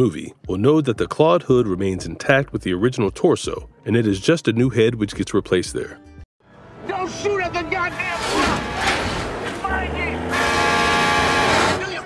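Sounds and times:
truck horn chord: 10.1 - 12.0.

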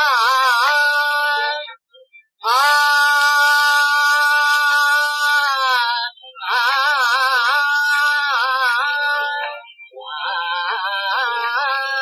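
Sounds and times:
man singing a long note: 0.0 - 1.8, 2.4 - 12.0.

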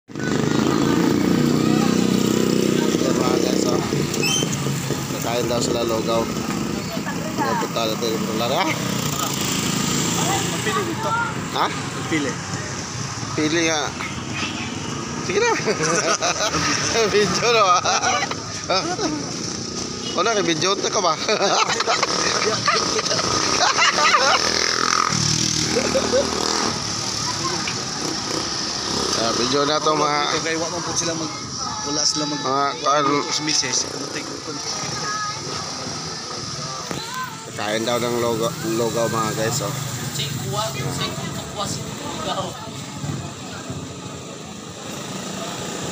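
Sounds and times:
motorcycle engine running: 0.1 - 11.7, 21.7 - 29.7.

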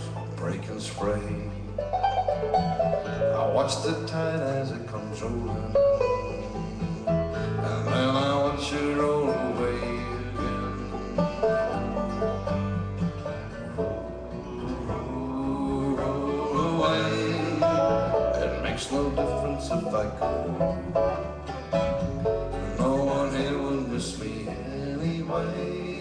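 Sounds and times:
acoustic guitar picking: 0.0 - 26.0
banjo picking: 0.0 - 26.0
bass line: 0.0 - 26.0.

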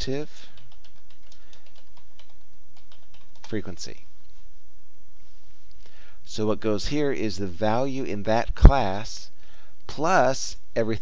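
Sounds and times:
computer keyboard typing: 0.5 - 3.6.

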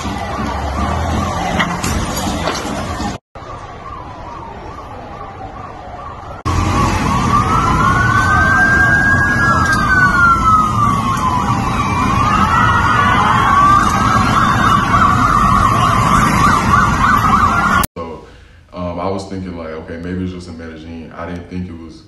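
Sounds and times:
police motorcycle sirens wailing: 0.0 - 17.9.

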